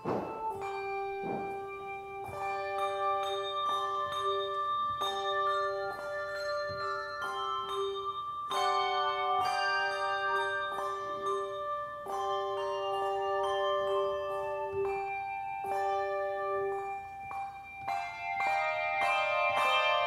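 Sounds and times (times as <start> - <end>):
handbell choir ringing: 0.0 - 20.0.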